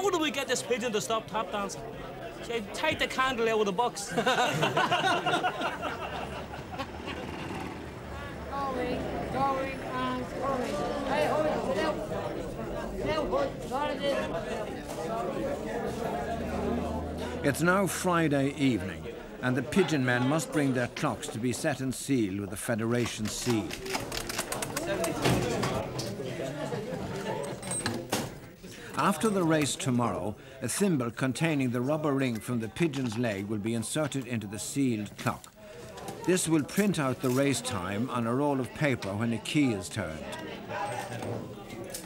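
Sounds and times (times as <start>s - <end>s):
chatter of many men: 0.0s - 42.0s
faint voices: 0.0s - 42.0s
street traffic rumble: 4.9s - 19.4s.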